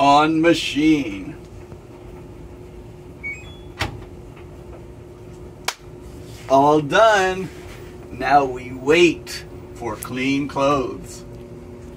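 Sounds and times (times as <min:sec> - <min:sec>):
washing machine control panel beeps: 0:03.2 - 0:03.9.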